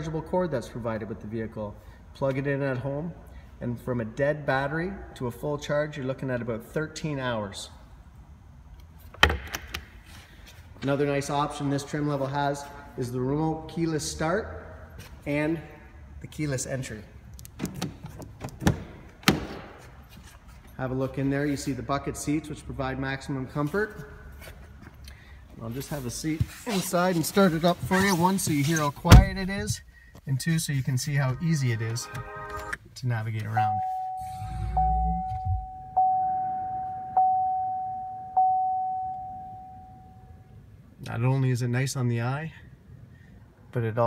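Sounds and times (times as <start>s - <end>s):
dashboard chime: 33.6s - 40.3s.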